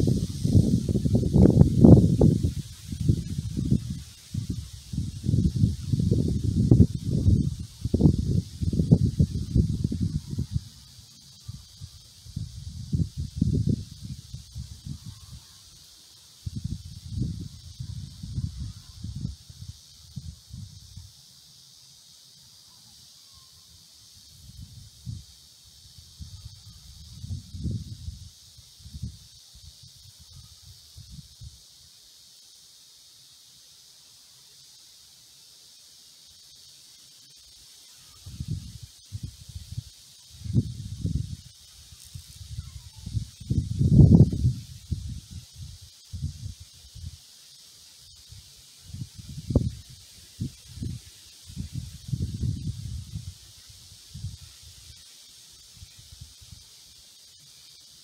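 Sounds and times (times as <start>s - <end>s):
wind buffeting microphone: 0.0s - 10.8s, 12.3s - 15.1s, 38.3s - 41.5s, 42.2s - 47.1s, 48.9s - 53.4s
high insect hiss: 0.0s - 58.0s.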